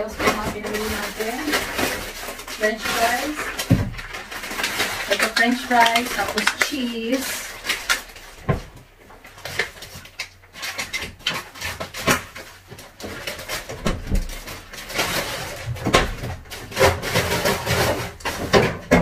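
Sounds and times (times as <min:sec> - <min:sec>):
plastic packaging crinkling: 0:00.0 - 0:19.0.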